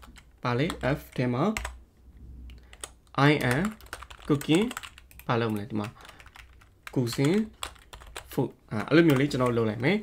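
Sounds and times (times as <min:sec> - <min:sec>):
computer keyboard typing: 0:00.0 - 0:01.8, 0:02.5 - 0:09.8
person speaking: 0:00.0 - 0:10.0.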